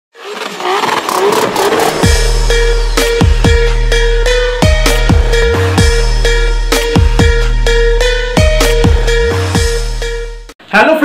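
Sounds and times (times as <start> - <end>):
intro music: 1.2 - 10.6.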